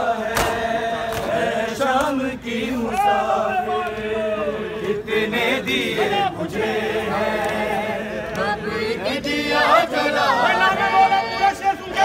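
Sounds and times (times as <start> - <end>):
men chanting in a group: 0.0 - 12.0
hands slapping chests: 0.3 - 2.2.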